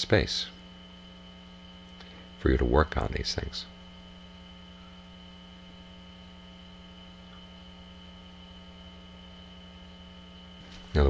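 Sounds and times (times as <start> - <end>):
electrical hum: 0.0 - 11.0
thin high whine: 0.0 - 11.0.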